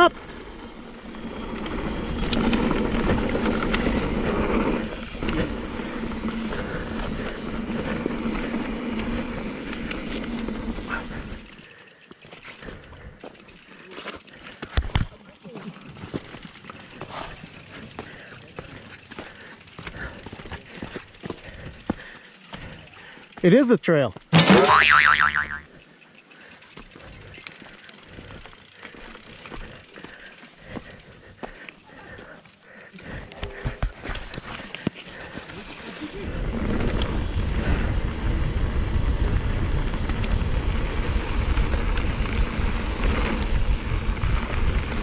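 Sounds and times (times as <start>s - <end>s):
bike rattling over ground: 0.4s - 23.4s, 33.6s - 45.0s.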